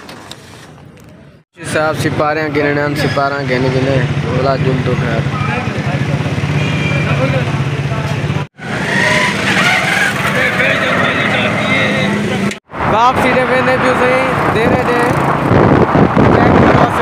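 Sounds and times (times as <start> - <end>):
street noise: 0.0 - 17.0
voices talking: 1.6 - 15.2.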